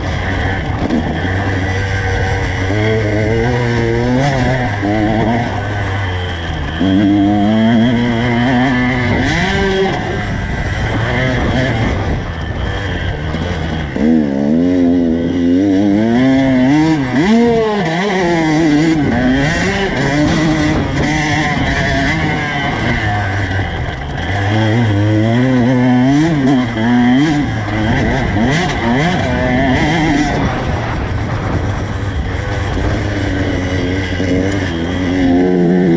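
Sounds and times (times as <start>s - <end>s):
dirt bike engine revving: 0.0s - 35.9s.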